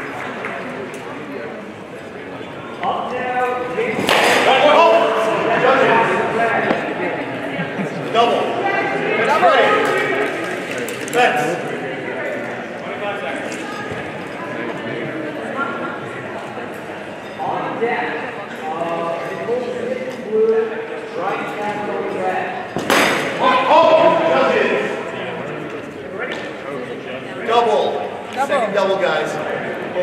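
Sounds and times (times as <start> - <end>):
voices echoing in a hall: 0.0 - 30.0.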